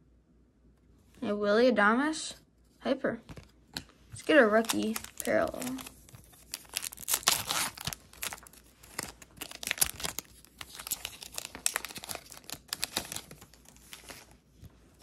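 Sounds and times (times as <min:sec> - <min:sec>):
foil wrapper tearing and crinkling: 0:04.2 - 0:14.4.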